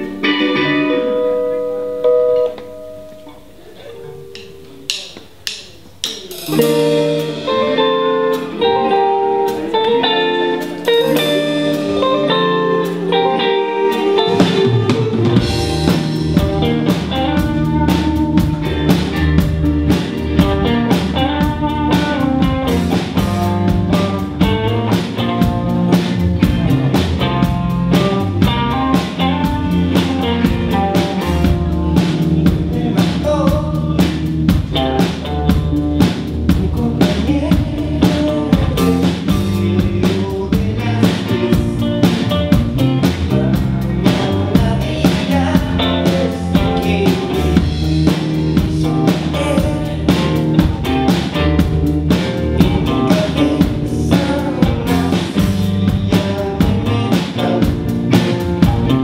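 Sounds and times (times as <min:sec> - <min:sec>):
bass and drum kit beat: 0:00.0 - 0:59.0
electric guitars playing: 0:00.0 - 0:59.0.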